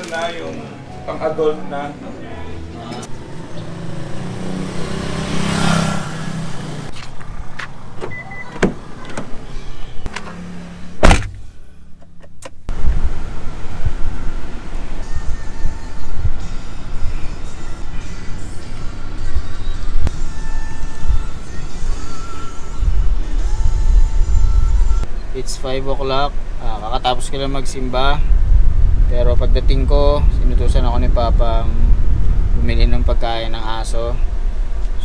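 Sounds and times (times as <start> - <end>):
car rumbling while moving: 1.9 - 25.4, 26.1 - 35.0
loud sharp thump: 11.0 - 11.5.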